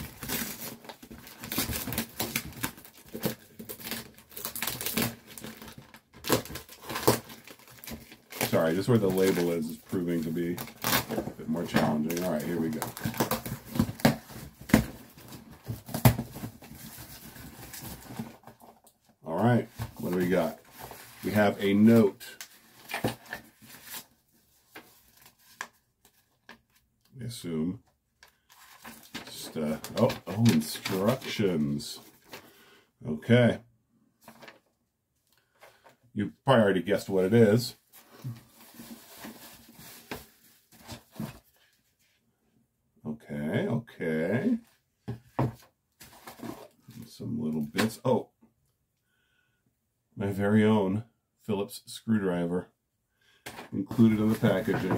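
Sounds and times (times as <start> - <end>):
cardboard rustling: 0.0 - 26.7, 28.4 - 32.5, 37.9 - 41.8, 45.1 - 47.0, 53.5 - 54.9.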